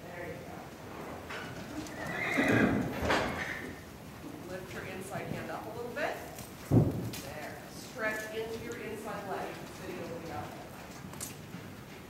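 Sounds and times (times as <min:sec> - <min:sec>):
hoofbeats on arena footing: 0:00.7 - 0:12.0
horse whinnying: 0:01.4 - 0:03.8.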